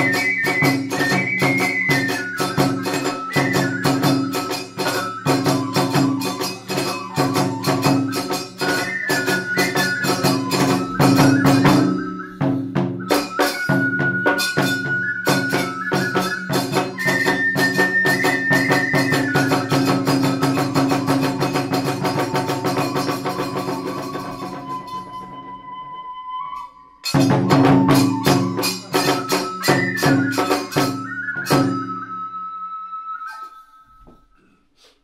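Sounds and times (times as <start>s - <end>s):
clashing hand cymbals: 0.0s - 25.3s, 26.6s - 32.2s
bamboo flute sliding notes: 0.0s - 35.0s
rapid drum strokes: 2.4s - 25.2s.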